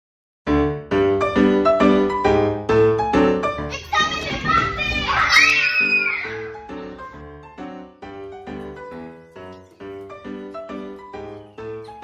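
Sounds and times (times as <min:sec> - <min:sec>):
background music: 0:00.6 - 0:12.0
children shouting: 0:03.7 - 0:07.2
child screaming: 0:04.0 - 0:06.6.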